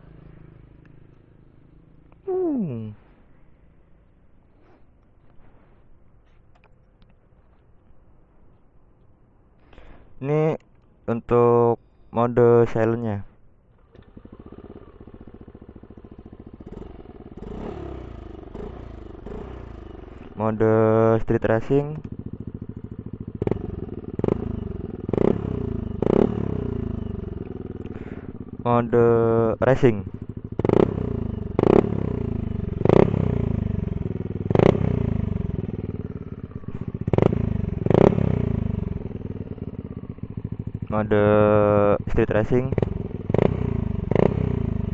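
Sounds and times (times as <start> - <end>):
scooter engine idling and revving: 0.0 - 3.2, 13.7 - 44.9.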